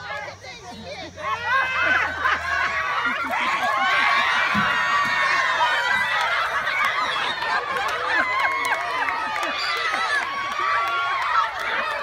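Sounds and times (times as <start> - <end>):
children yelling and squealing: 0.0 - 12.0.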